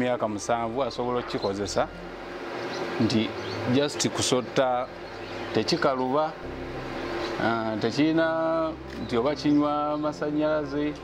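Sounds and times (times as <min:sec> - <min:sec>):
faint steady buzz: 0:00.0 - 0:11.0
man speaking: 0:03.0 - 0:06.4, 0:07.4 - 0:11.0.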